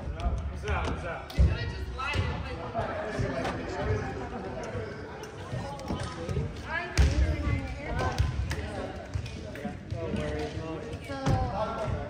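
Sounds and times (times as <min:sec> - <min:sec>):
players' voices: 0:00.0 - 0:12.0.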